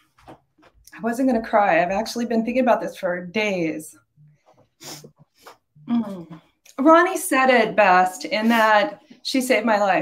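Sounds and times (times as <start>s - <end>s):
woman speaking: 0.9s - 4.0s, 5.9s - 10.0s.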